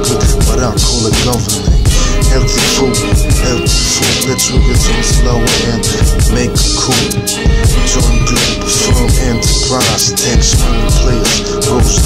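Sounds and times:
hip hop beat with deep bass: 0.0 - 12.0
rapped vocal: 0.0 - 12.0.

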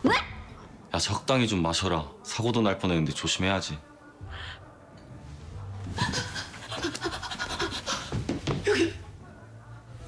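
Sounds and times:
woman panting hoarsely: 6.1 - 9.0.

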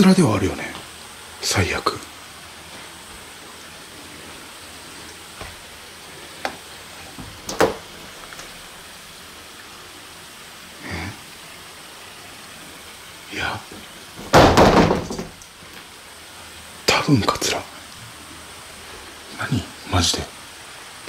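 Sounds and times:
background hiss: 0.0 - 21.0.

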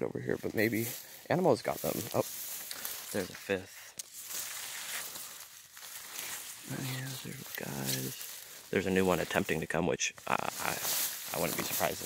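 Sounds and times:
leaves and dry grass rustling: 0.0 - 12.0.

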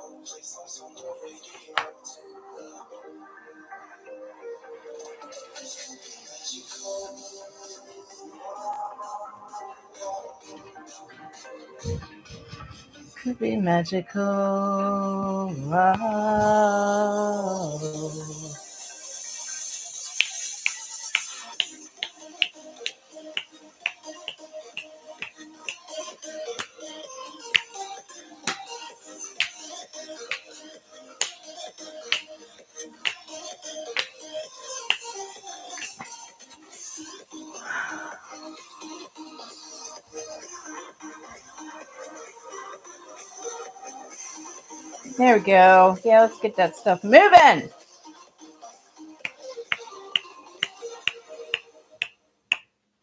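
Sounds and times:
background music: 0.0 - 53.0
snapping beat: 19.7 - 26.8, 27.5 - 27.8, 28.4 - 28.8, 29.4 - 30.6, 31.2 - 32.4, 33.0 - 35.2, 35.8 - 36.2, 49.2 - 52.7.

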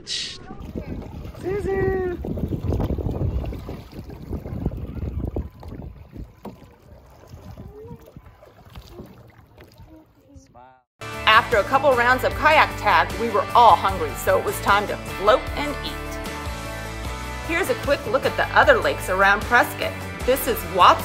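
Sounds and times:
wind rumble on microphone: 0.4 - 10.6
paddle splashes: 0.5 - 10.4
water lapping: 0.5 - 10.6.

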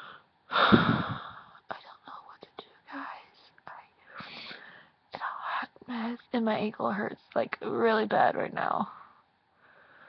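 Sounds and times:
woman whispering: 1.6 - 7.5
faint breathing out: 4.0 - 5.0, 9.0 - 10.0.

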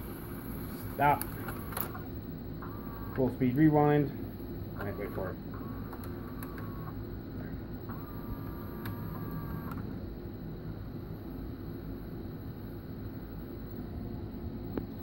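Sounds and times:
faint whine: 0.0 - 15.0
tape rewinding whir: 0.9 - 3.4, 4.8 - 7.0, 7.9 - 9.9.

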